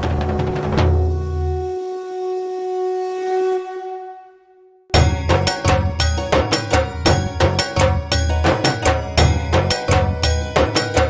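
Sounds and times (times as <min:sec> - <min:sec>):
conch shell blown: 0:00.8 - 0:05.2.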